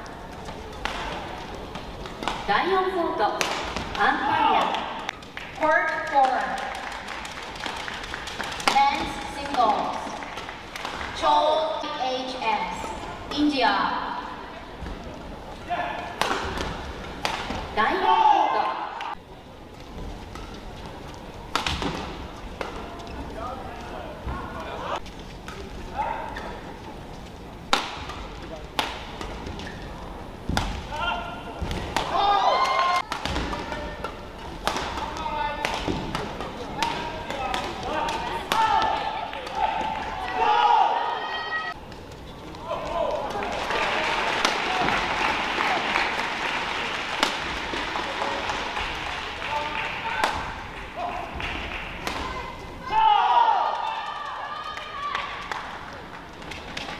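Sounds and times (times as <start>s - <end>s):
rackets striking shuttlecock: 0.4s - 2.5s, 16.2s - 17.6s, 21.5s - 22.9s, 27.7s - 29.8s, 31.6s - 39.9s.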